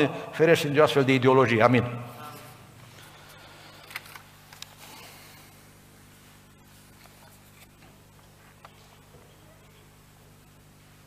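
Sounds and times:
paper rustling: 0:06.7 - 0:09.0.

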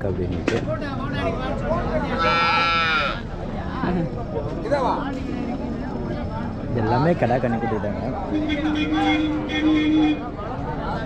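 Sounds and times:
murmur of voices: 0:00.0 - 0:11.0
calf bawling: 0:02.1 - 0:03.2.

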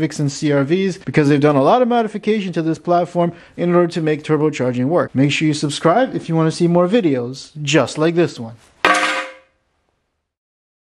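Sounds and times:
metal part clanging down: 0:08.8 - 0:09.5.

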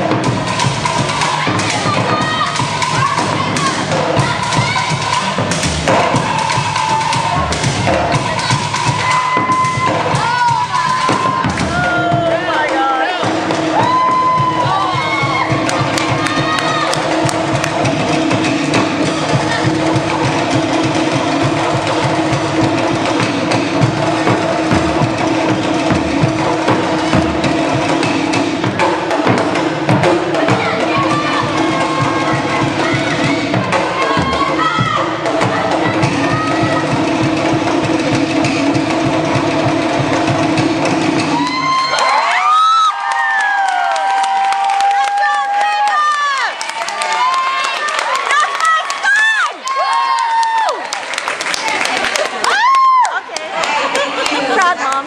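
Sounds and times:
crowd cheering and yelling: 0:00.0 - 0:37.8, 0:41.0 - 0:55.0
drum ensemble fast rhythm: 0:00.0 - 0:55.0
crowd shouting: 0:00.7 - 0:17.9, 0:30.1 - 0:37.0
long held shout: 0:52.5 - 0:53.3.

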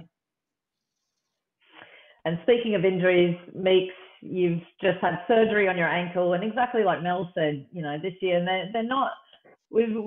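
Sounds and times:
faint intake of breath: 0:01.6 - 0:02.2.

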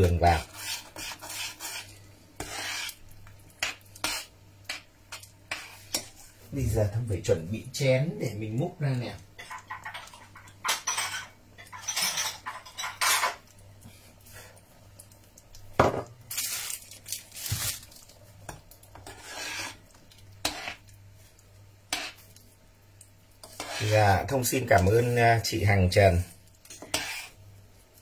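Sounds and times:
bowls and cutlery clinking: 0:09.4 - 0:13.4.

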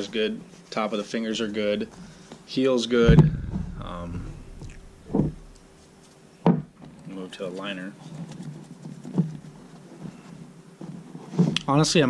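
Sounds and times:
glove thumping on wooden table: 0:03.1 - 0:05.7.

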